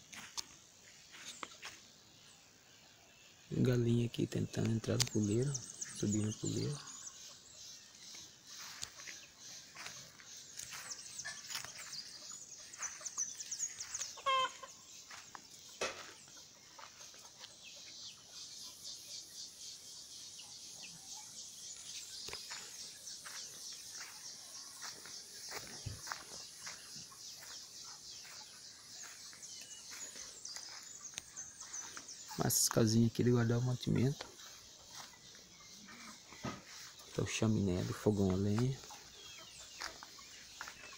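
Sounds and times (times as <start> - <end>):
chickens clucking: 3.5 - 19.2, 22.2 - 40.9.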